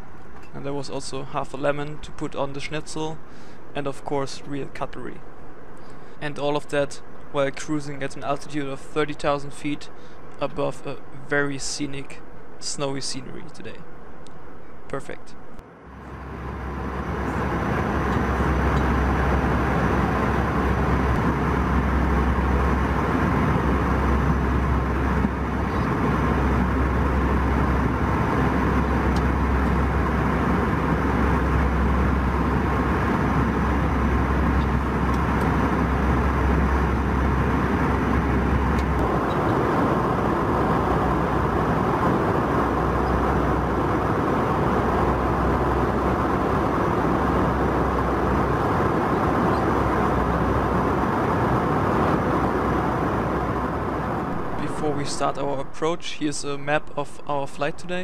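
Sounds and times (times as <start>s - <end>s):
constant rush of air: 0.0s - 58.0s
airliner cabin rumble: 15.9s - 58.0s.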